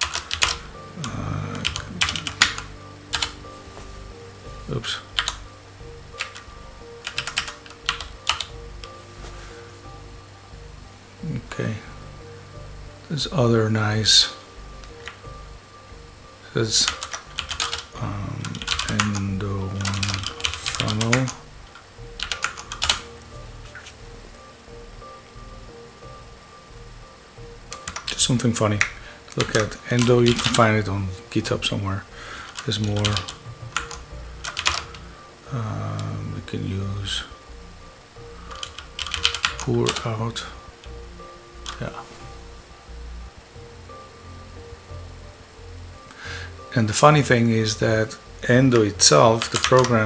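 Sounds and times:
computer keyboard typing: 0.0 - 3.4, 4.7 - 5.4, 6.1 - 9.0, 16.8 - 23.1, 27.7 - 30.8, 32.5 - 35.0, 38.5 - 40.2, 48.7 - 50.0
low hum with pulsing tone: 0.3 - 49.2.

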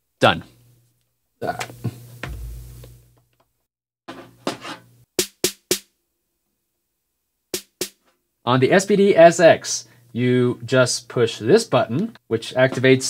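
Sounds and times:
electronic drum hits: 2.2 - 2.8.

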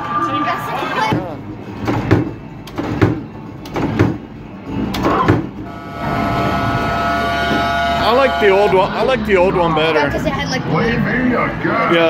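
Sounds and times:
sharp thumps: 5.2 - 8.8
steady electronic tone: 5.6 - 9.4.

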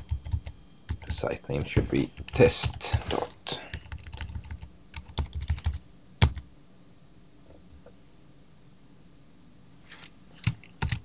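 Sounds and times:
computer keyboard typing: 0.0 - 6.5, 10.4 - 11.0.

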